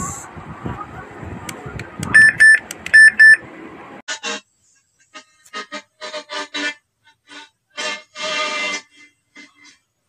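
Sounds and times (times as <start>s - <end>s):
loud high electronic beeps: 2.2s - 3.4s.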